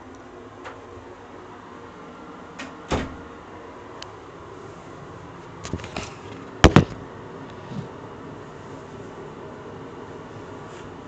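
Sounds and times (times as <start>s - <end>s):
door thudding against frame: 2.9s - 3.2s.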